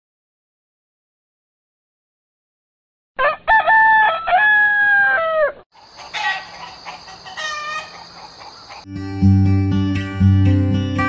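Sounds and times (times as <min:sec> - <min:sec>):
rooster crowing: 0:03.2 - 0:08.9.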